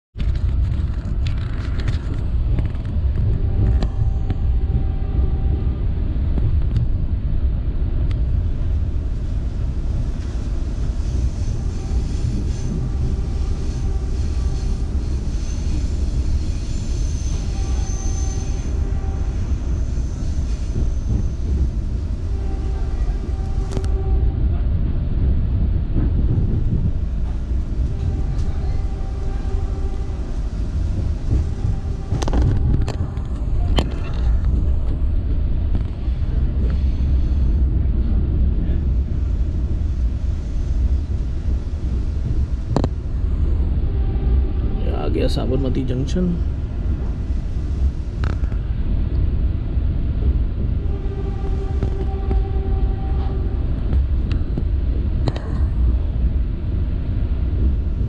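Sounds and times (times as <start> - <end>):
train wheels rumbling on rail: 0.2 - 58.0
sharp track clicks: 29.8 - 35.0.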